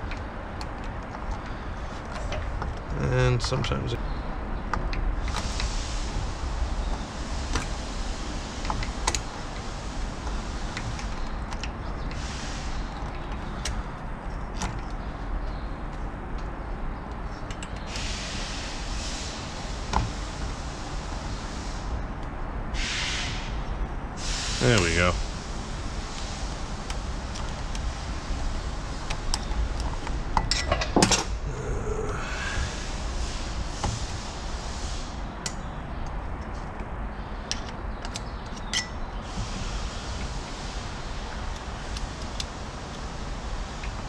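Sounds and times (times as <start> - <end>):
steady low hum: 0.0 - 44.0
snap ring metallic clicks and scrapes: 37.5 - 39.0.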